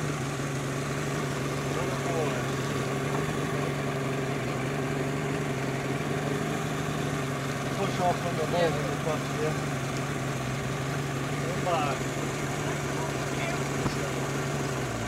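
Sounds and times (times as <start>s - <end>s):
outboard motor idling: 0.0s - 15.0s.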